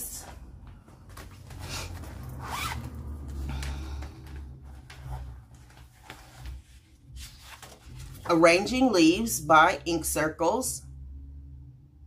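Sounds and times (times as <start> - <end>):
zipper being pulled: 1.3 - 3.6.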